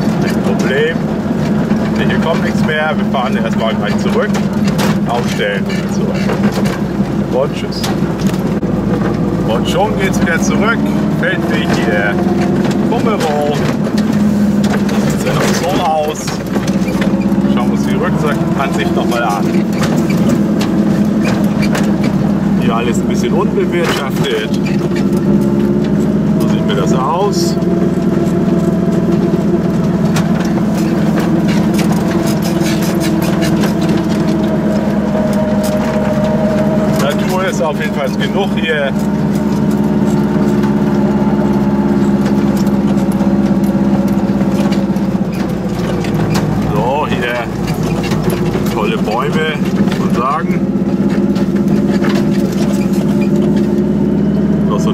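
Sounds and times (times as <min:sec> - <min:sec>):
car clicks and knocks: 0:00.0 - 0:54.9
two-stroke car engine running: 0:00.0 - 0:54.9.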